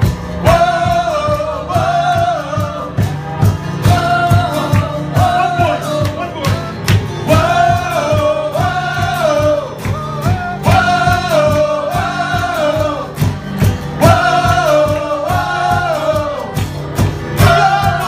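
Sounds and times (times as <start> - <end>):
cajon beat: 0.0 - 18.0
held keyboard chord: 0.0 - 18.0.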